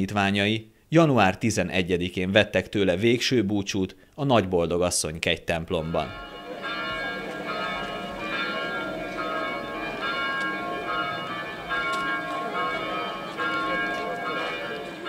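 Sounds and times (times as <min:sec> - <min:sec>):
church bells ringing: 0:05.8 - 0:15.0.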